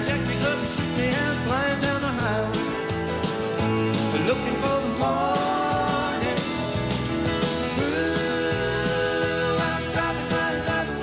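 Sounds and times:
country pop band with guitar: 0.0s - 11.0s.

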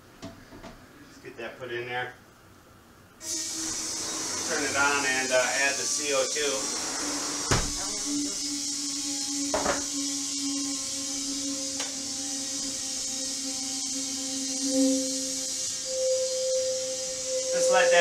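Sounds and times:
gas hissing: 3.2s - 18.0s
low humming tone: 6.6s - 18.0s.

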